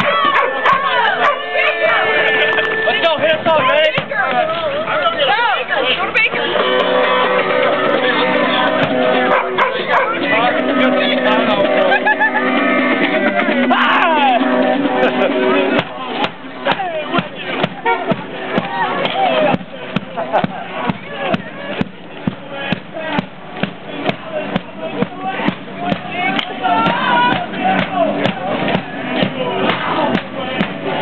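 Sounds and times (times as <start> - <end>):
marching band drumbeat: 0.0 - 12.2, 13.0 - 31.0
crowd shouting and singing: 0.0 - 31.0.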